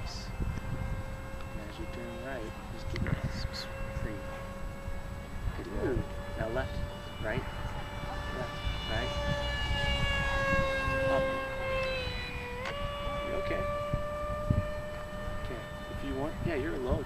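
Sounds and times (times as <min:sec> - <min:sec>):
model plane electric motor whining: 0:00.0 - 0:17.0
wind rumble on microphone: 0:00.0 - 0:17.0.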